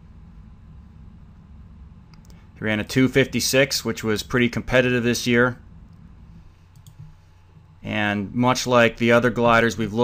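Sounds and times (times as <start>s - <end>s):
low hum: 0.0s - 10.0s
faint clicks: 2.1s - 2.4s, 6.7s - 7.7s.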